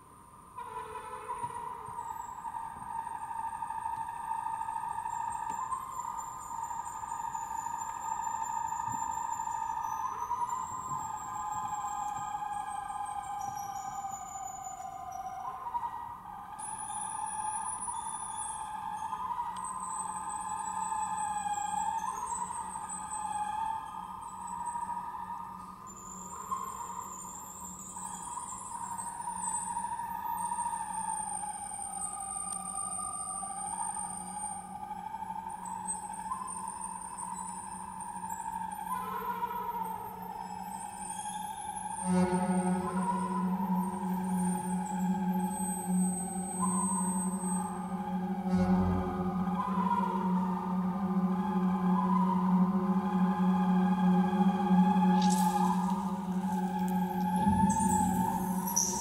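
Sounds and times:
sustained whistling tones: 0:02.0 - 0:59.0
steady low hum: 0:42.0 - 0:59.0
thin high tones: 0:53.5 - 0:59.0.

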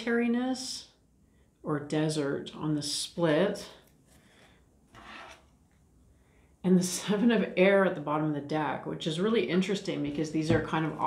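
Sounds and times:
cards sliding against each other: 0:05.0 - 0:05.5.

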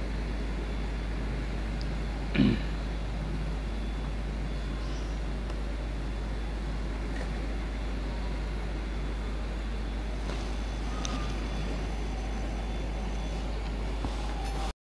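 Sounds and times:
road traffic rumble: 0:00.0 - 0:14.7.

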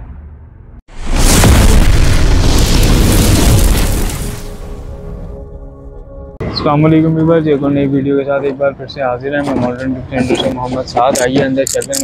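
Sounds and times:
explosion boom: 0:00.0 - 0:05.5
music: 0:04.5 - 0:09.7.

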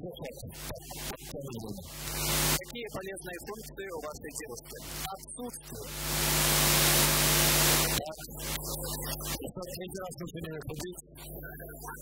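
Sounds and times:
steady hum: 0:01.9 - 0:02.6, 0:05.8 - 0:09.2
loud hiss: 0:02.0 - 0:02.6, 0:05.9 - 0:08.0.

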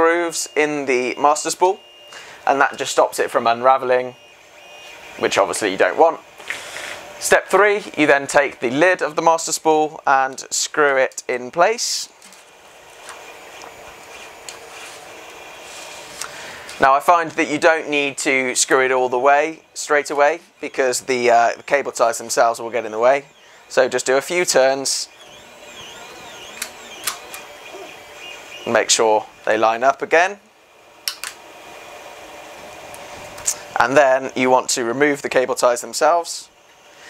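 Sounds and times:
plastic spool rubbing hiss: 0:06.3 - 0:08.0, 0:12.1 - 0:29.6
plastic spool clicks: 0:25.8 - 0:27.5.

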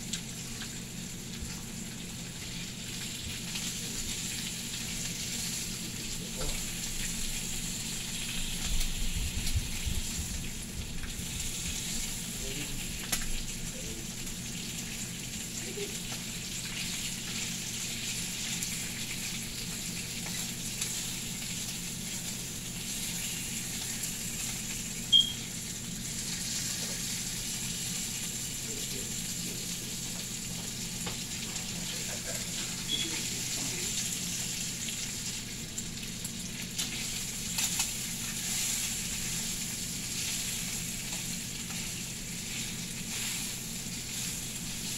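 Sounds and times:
bacon sizzling in a frying pan: 0:00.0 - 0:44.9.

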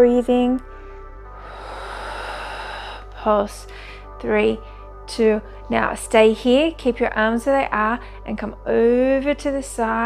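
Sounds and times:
quiet background music: 0:00.0 - 0:10.0
long breathy exhale: 0:00.6 - 0:05.0.

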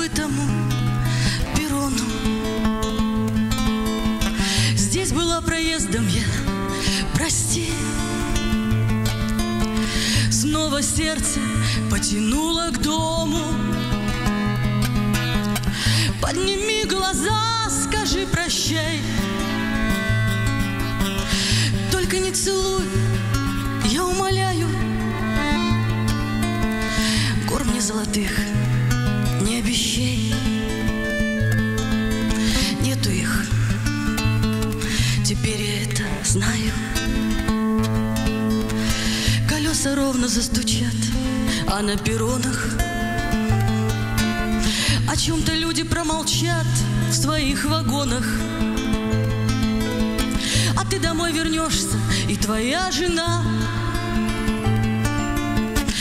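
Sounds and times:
person singing: 0:00.0 - 0:03.0, 0:09.8 - 0:14.2, 0:21.2 - 0:31.3, 0:39.3 - 0:56.0
acoustic guitar strumming: 0:00.0 - 0:56.0.

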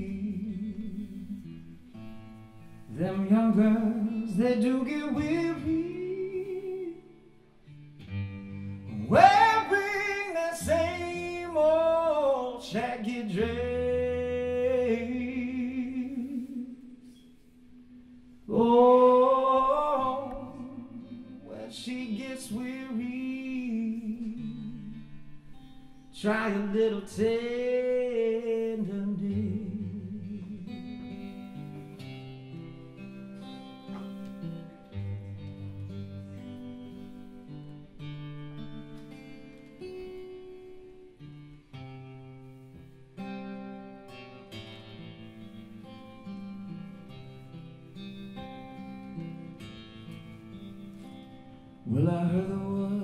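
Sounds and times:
acoustic guitar picking: 0:00.0 - 0:53.0.

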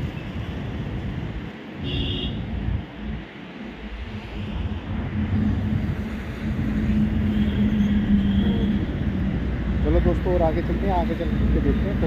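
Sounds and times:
passing vehicle rumble: 0:02.4 - 0:12.0.

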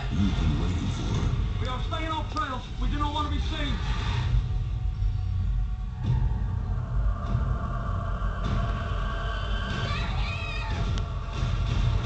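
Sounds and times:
low rumbling drone: 0:00.0 - 0:02.0, 0:02.6 - 0:12.0.

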